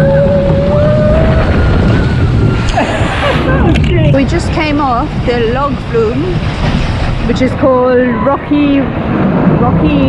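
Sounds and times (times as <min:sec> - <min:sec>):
rushing water rumble: 0:00.0 - 0:10.0.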